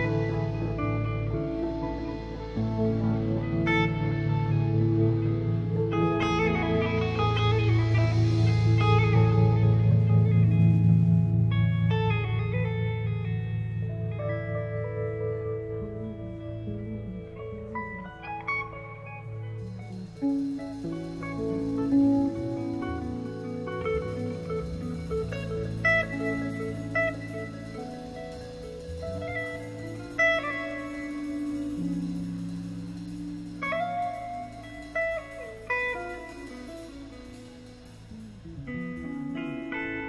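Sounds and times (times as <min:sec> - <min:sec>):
bass guitar: 0:00.0 - 0:40.0
cymbals: 0:00.0 - 0:40.0
drums: 0:00.0 - 0:40.0
electric guitar lead notes: 0:00.0 - 0:40.0.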